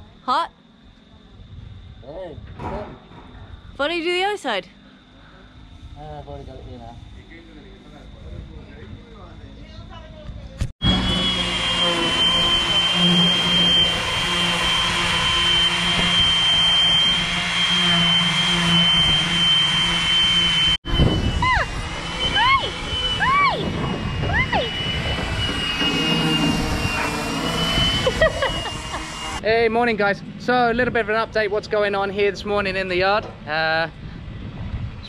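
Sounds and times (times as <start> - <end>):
orbital sander whining: 10.8 - 30.8.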